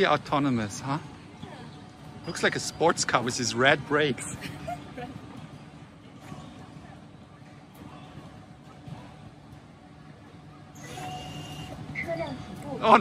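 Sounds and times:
electric vehicle whine: 10.5 - 13.0.

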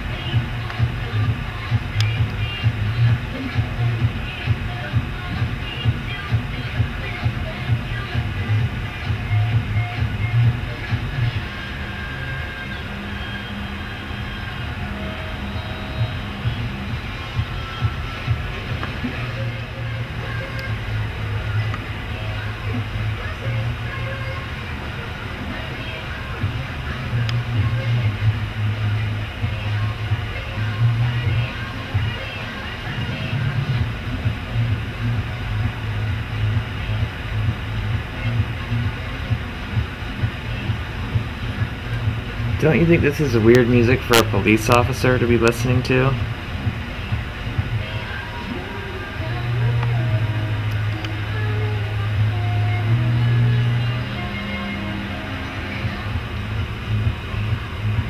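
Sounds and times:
pop music with pulsing bass: 0.0 - 58.0.

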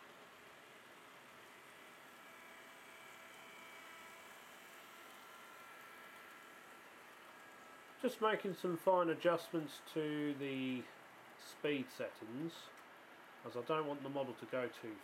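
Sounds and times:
model train motor whine: 0.0 - 13.7
low hiss: 0.0 - 15.0.

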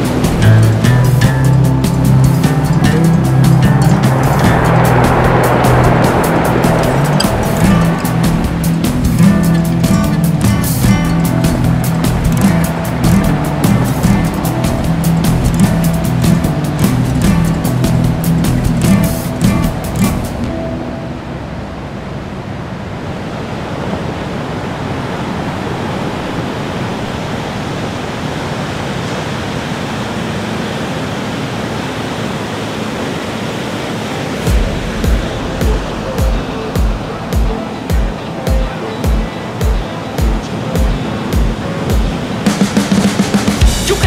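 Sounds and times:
bass drum beat: 0.0 - 20.5, 34.5 - 44.0
rough sea waves and surf: 0.0 - 44.0.

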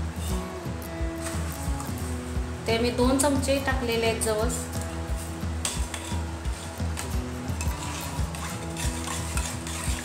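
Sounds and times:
metal spoon clinking in steel bowl: 7.6 - 10.0.

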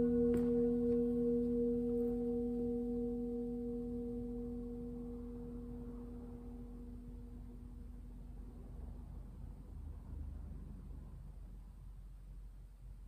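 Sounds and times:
singing bowl ringing: 0.0 - 8.7.

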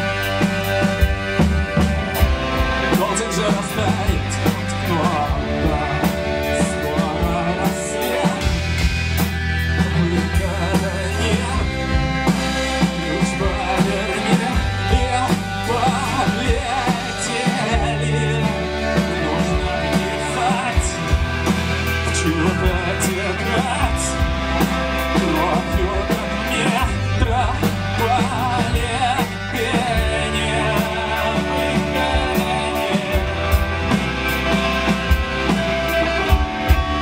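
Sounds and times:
drum kit beat: 0.0 - 37.0
electric bass low notes: 0.0 - 37.0
guitar: 0.0 - 37.0
keyboards: 0.0 - 37.0.

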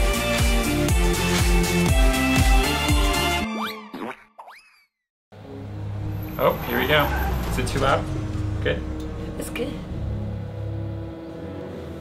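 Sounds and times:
low vehicle rumble: 5.4 - 12.0
music with long held notes: 7.6 - 12.0.

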